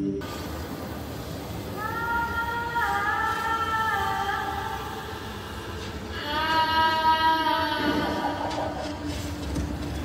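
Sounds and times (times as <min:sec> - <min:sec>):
ambient music over speakers: 0:00.0 - 0:10.0.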